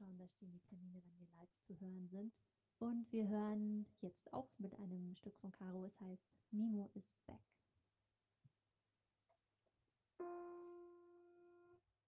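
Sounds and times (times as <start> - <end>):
piano note ringing: 10.2 - 11.8.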